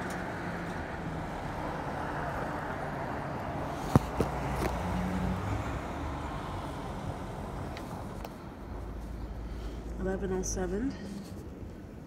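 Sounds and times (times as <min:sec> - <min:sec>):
vehicles driving past: 0:00.0 - 0:12.0.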